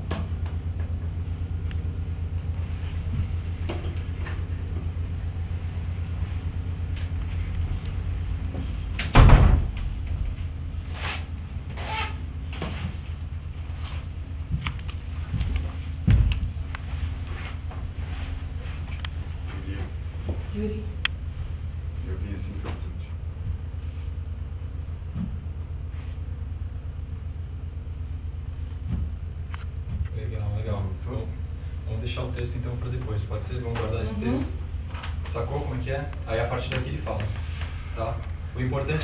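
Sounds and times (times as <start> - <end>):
steady low hum: 0.0 - 39.0
wooden door thumping shut: 9.1 - 9.9.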